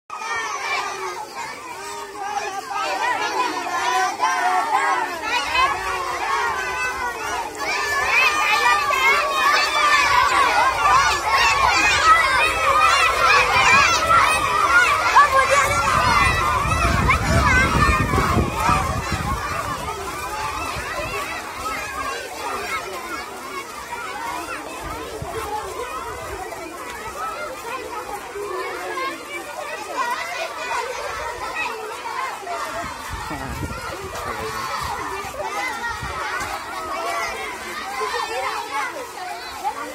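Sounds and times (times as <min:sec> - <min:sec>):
crowd of children talking: 0:00.1 - 0:39.9.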